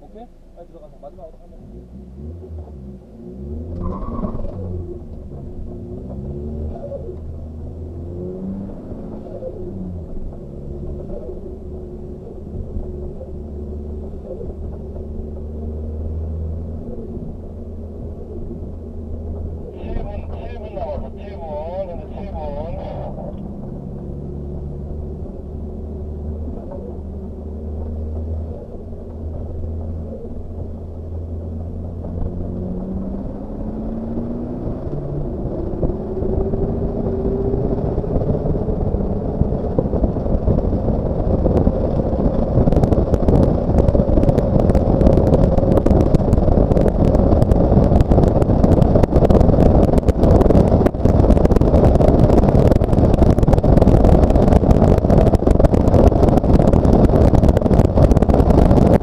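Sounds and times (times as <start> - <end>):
road and wind noise: 0.0 - 59.0
car engine accelerating: 0.1 - 59.0.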